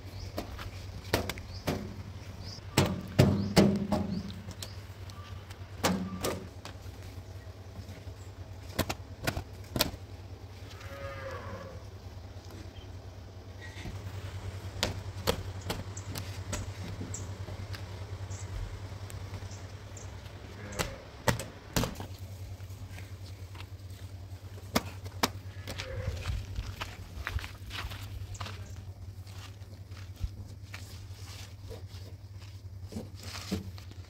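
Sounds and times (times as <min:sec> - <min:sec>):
low steady rumble: 0:00.0 - 0:34.0
steady low hum: 0:00.0 - 0:34.0
cow mooing: 0:10.7 - 0:11.9, 0:20.4 - 0:21.3, 0:25.5 - 0:26.3
footsteps crunching on gravel: 0:21.8 - 0:34.0.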